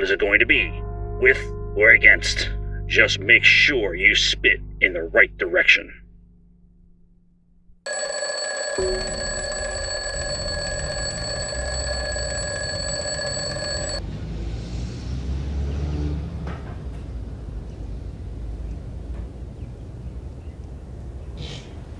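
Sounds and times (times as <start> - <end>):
electronic phone ringing: 7.9 - 14.0.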